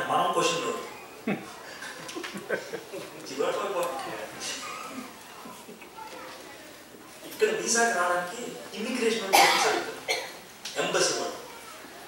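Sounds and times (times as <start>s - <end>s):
man speaking: 10.7s - 11.5s.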